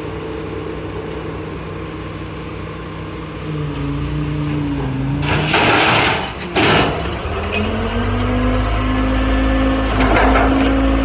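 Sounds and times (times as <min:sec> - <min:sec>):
heavy diesel engines revving: 0:00.0 - 0:11.0
loud rushing crashing noises: 0:05.2 - 0:07.5.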